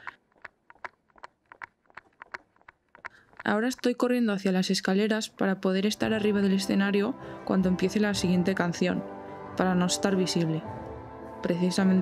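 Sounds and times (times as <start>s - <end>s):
running footsteps: 0.0s - 4.0s.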